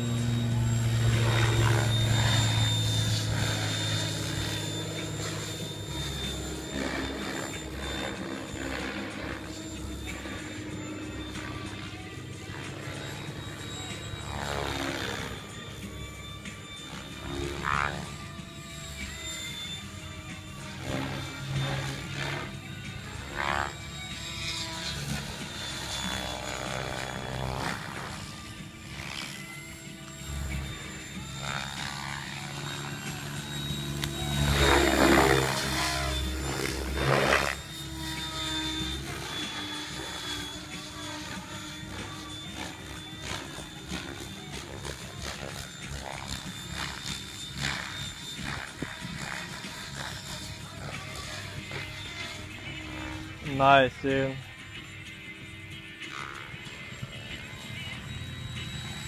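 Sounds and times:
rc helicopter motor whine: 0.0s - 59.0s
rotor blades whirring: 0.0s - 59.0s.

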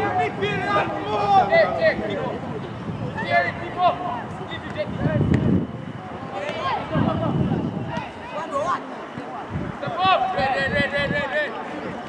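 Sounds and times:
voices shouting and calling: 0.0s - 12.0s.

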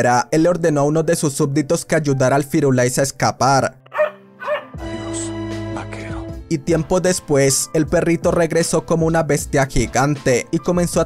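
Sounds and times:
puppy yelping: 3.9s - 4.8s
held chord of music: 4.0s - 6.4s.

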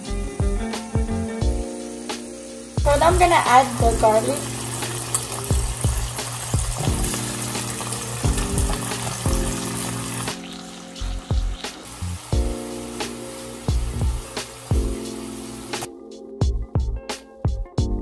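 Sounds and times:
steak sizzling in a skillet: 0.0s - 15.9s
background music with steady beat: 0.0s - 18.0s.

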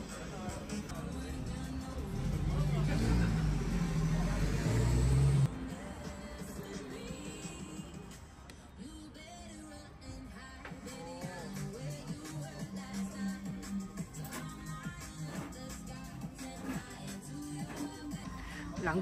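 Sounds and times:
low engine rumble with hiss: 0.0s - 18.8s
motor vehicle traffic passing: 0.9s - 6.3s.

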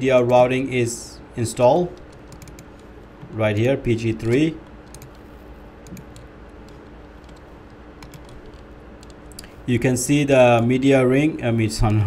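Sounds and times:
steady low hum: 0.0s - 12.0s
keyboard and mouse clicks: 1.9s - 3.4s, 4.2s - 9.6s.

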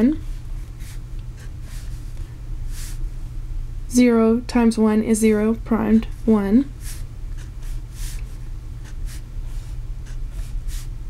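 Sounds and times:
low steady hum: 0.0s - 11.0s
pen scratching on paper: 0.3s - 2.1s, 6.1s - 10.9s.

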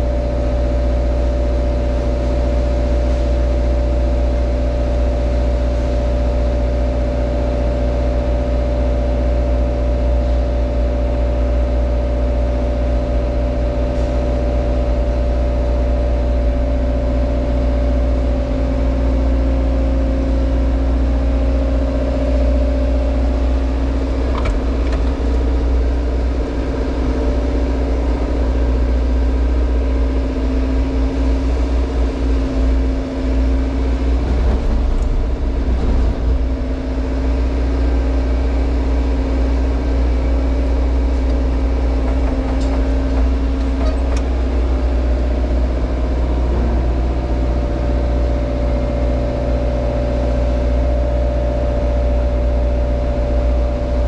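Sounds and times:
excavator engine and hydraulics drone: 0.0s - 54.0s.

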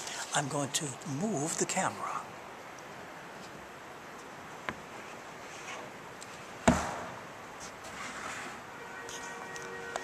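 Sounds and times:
room hiss: 0.0s - 9.5s.

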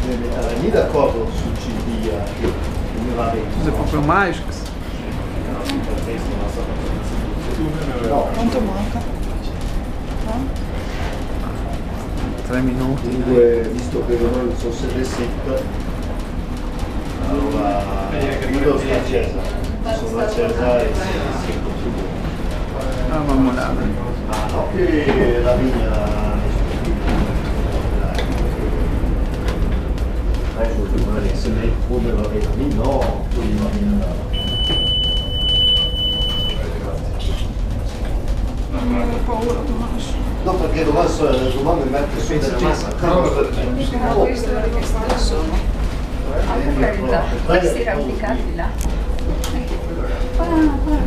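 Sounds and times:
cable car cabin rumble: 0.0s - 51.0s
high-pitched electronic beep: 34.3s - 36.6s
faint voices: 36.2s - 51.0s.

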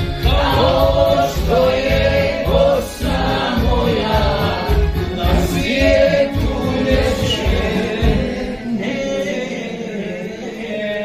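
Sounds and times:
accompaniment with low beat: 0.0s - 8.6s
group of voices singing: 0.0s - 11.0s.

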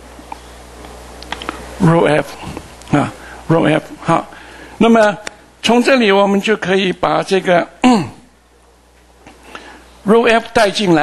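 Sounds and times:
man's voice: 1.8s - 8.3s, 10.1s - 11.0s.

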